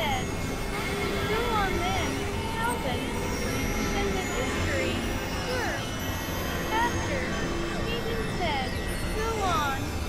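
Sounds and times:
steady high synth tones: 0.0s - 10.0s.

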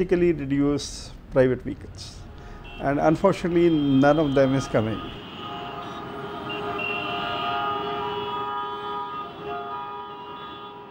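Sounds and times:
engines rumbling: 0.0s - 10.9s
vehicle horns honking: 2.4s - 10.9s.

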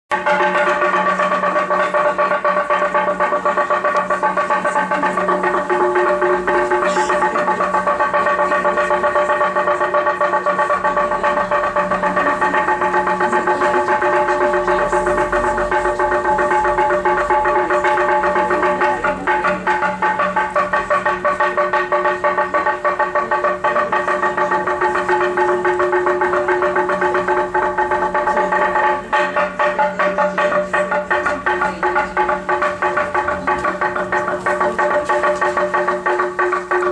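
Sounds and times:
church bells pealing: 0.1s - 36.9s.

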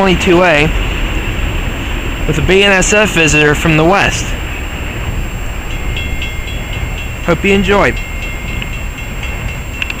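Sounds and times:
train wheels rumbling on track: 0.0s - 10.0s.

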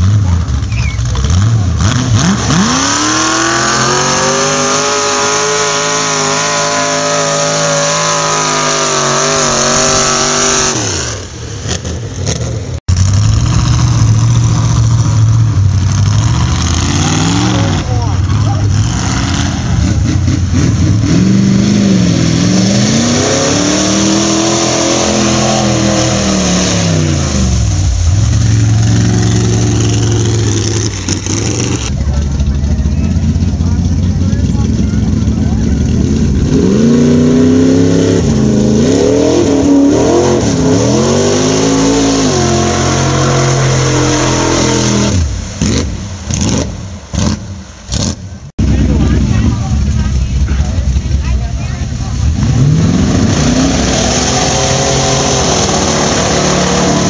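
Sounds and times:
truck engine revving in mud: 0.0s - 57.0s.

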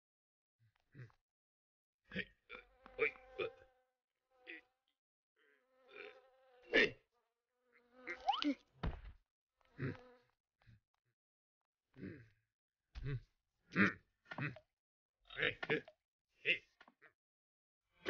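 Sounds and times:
cartoon insects buzzing: 5.8s - 7.0s, 7.7s - 8.6s.

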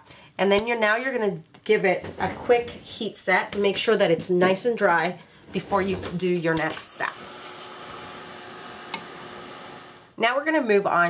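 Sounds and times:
heat tool blowing: 7.0s - 10.2s.

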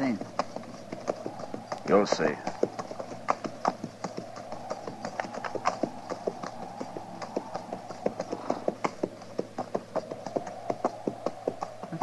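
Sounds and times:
horses hooves clip-clopping: 0.0s - 12.0s.

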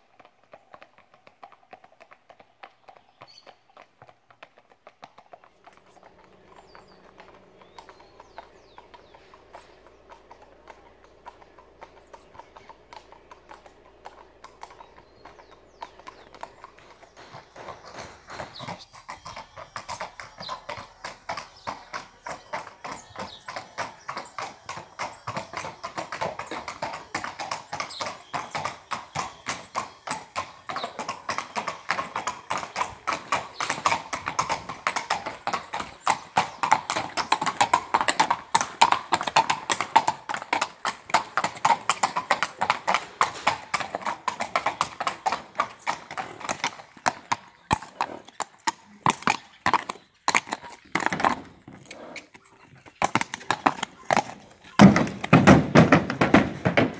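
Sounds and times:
horse hooves clip-clopping on pavement: 0.0s - 56.9s.

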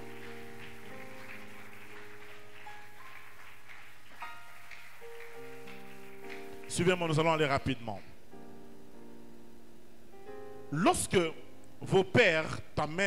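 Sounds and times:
electronic keyboard chords: 0.0s - 3.3s.

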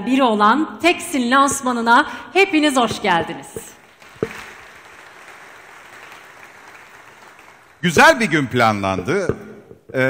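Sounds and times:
audience applauding: 3.8s - 8.6s.

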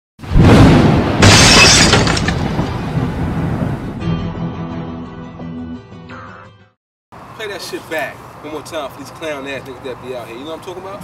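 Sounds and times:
loud ringing crashes: 0.4s - 3.4s.

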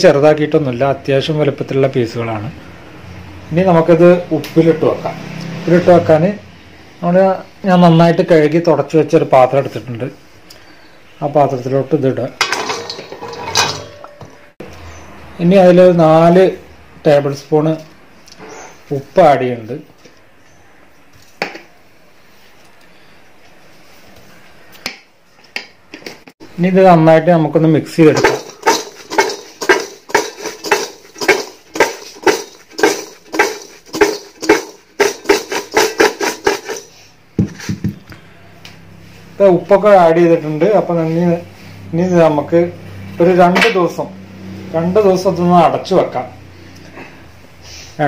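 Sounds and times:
fruit pieces clattering in steel bowl: 12.4s - 14.4s, 28.1s - 37.0s.

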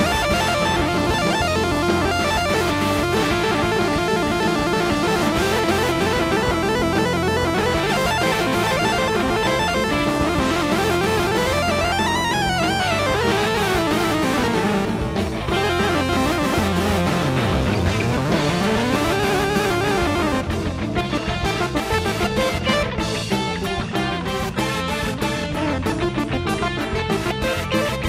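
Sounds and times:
electric guitar lead line: 0.0s - 28.0s
live rock band: 0.0s - 28.0s.

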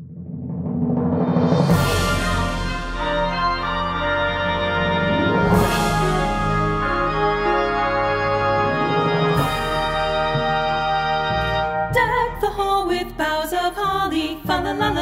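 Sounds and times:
sustained instrumental chords: 1.7s - 13.0s.

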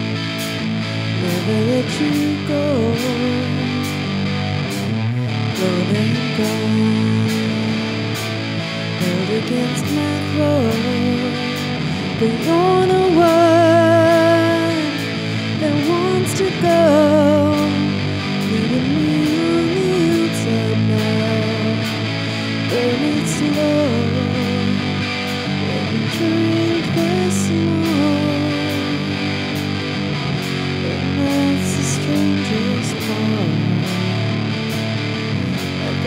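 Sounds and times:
electric guitar lead bending notes: 0.0s - 36.0s
live rock band playing: 0.0s - 36.0s.

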